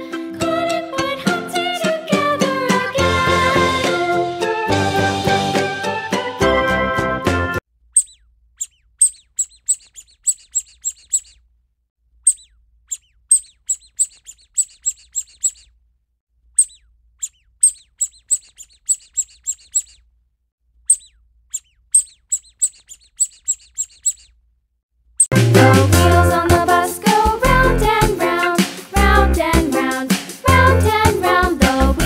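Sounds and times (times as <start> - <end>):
ducklings peeping: 8.0 - 11.4, 12.3 - 15.7, 16.6 - 20.0, 20.9 - 24.3.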